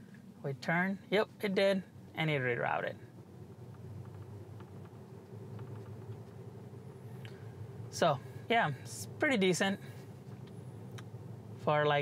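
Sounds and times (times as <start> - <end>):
road and tyre rumble: 0.0 - 12.0.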